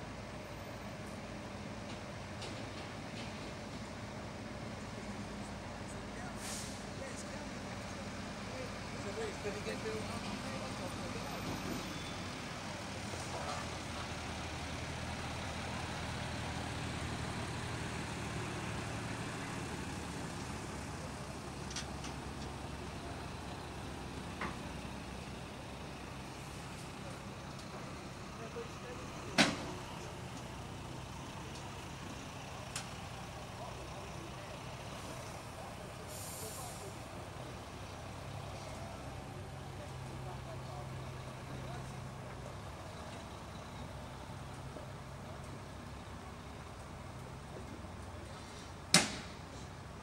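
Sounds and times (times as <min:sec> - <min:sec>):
lorry engines humming: 0:00.1 - 0:50.0
air brake hiss: 0:06.3 - 0:06.9, 0:36.0 - 0:37.0.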